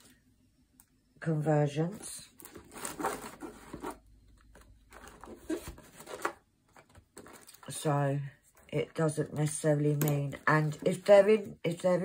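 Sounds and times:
packets rustling in plastic box: 2.3 - 4.0, 4.8 - 7.8.

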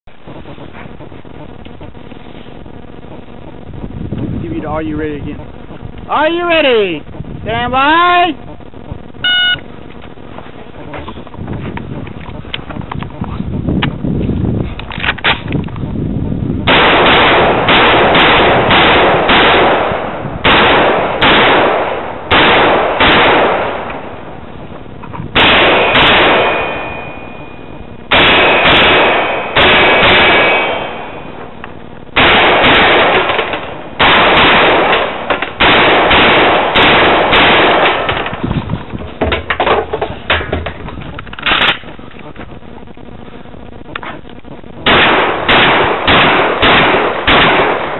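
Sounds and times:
shotgun shots: 16.6 - 24.3, 25.3 - 31.5, 32.2 - 38.6, 44.8 - 47.9
metallic ringing: 25.8 - 27.9.

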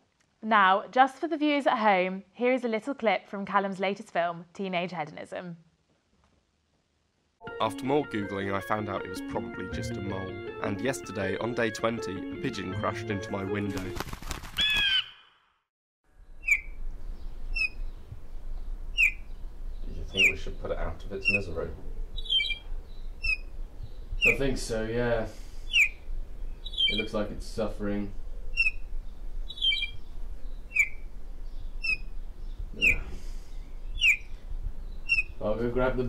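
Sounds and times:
brief rustle: 14.0 - 14.9
low steady background noise: 16.1 - 36.0
bird chirping: 16.2 - 24.8, 25.4 - 36.0.

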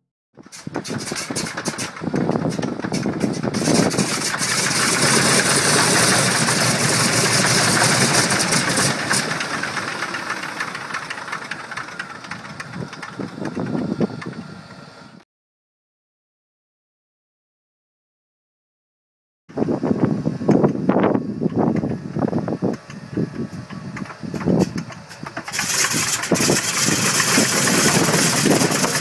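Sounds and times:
radial engine starting with pops: 0.4 - 14.9, 20.5 - 20.8, 21.4 - 29.0.

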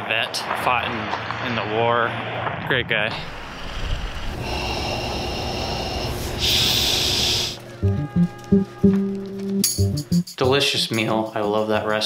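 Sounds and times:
steady rushing noise: 0.6 - 7.6
loud hiss: 3.2 - 7.6
music with plucked beat: 7.8 - 11.1.

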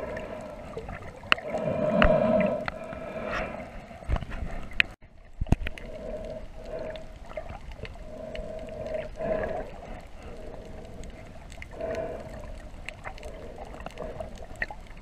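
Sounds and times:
wavering underwater hum: 0.0 - 15.0.

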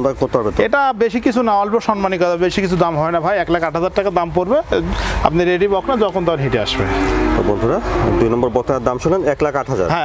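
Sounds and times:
cow mooing: 5.5 - 9.2.

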